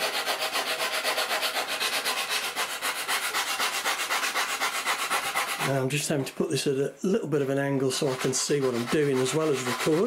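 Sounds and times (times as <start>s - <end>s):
sandpaper rubbing wood: 0.0s - 5.8s, 7.8s - 10.0s.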